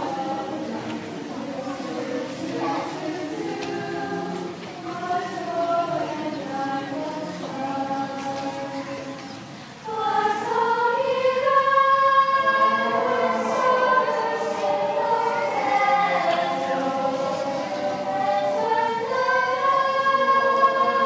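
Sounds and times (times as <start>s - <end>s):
teenage choir singing: 0.0s - 21.0s.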